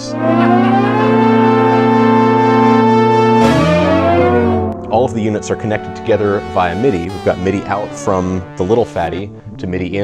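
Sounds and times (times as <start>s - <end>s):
synthesizer chord gliding: 0.0s - 10.0s.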